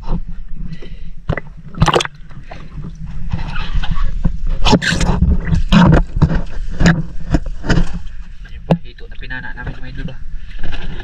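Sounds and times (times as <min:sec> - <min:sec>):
water splashing and sloshing: 0:00.8 - 0:08.4
fish knocking and splashing: 0:01.3 - 0:03.5, 0:04.2 - 0:08.1.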